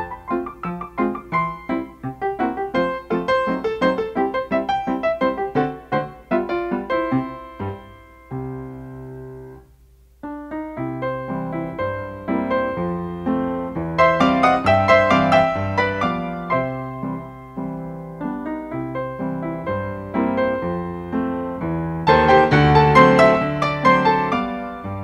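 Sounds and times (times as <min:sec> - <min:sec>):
piano music: 0:00.0 - 0:25.0.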